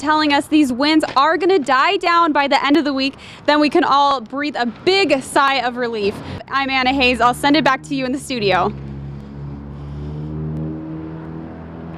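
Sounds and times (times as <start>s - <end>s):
vehicle engine running: 6.1s - 11.9s.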